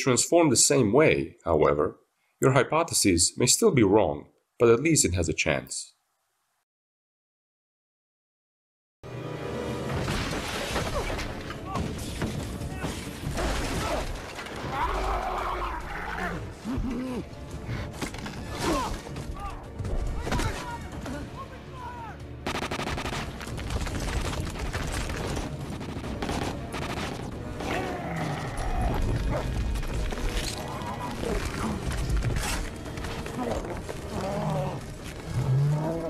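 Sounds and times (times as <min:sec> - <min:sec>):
soundtrack music: 0:09.0 - 0:36.0
yelping growling animal cries: 0:14.7 - 0:17.2, 0:33.4 - 0:36.0
debris clattering and crashing: 0:23.4 - 0:27.4.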